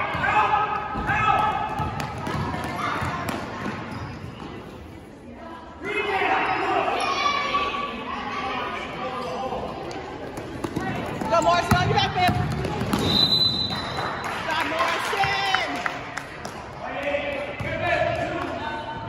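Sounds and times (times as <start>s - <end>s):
basketball bouncing on gym floor: 1.0s - 4.0s, 10.4s - 13.3s
referee's whistle blast: 13.0s - 14.0s.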